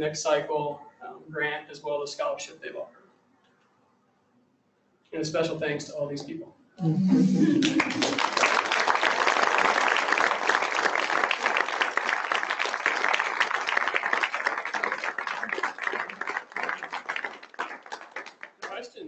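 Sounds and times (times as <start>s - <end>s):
audience applauding: 7.1s - 19.0s.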